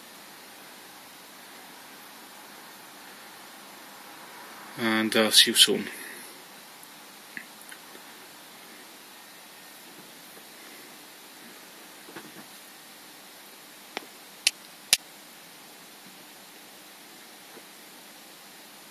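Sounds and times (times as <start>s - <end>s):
faint room tone hiss: 0.0s - 18.9s.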